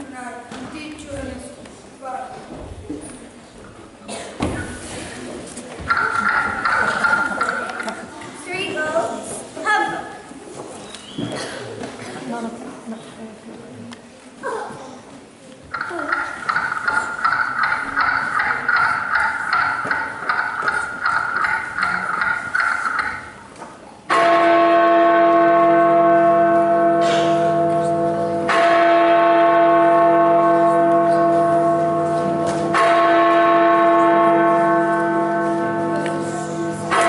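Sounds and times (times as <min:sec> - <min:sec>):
large bell tolling: 0:24.1 - 0:37.0.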